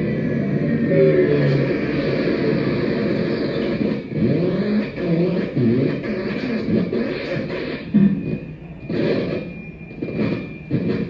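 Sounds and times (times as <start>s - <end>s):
experimental electronic music: 0.0s - 11.0s.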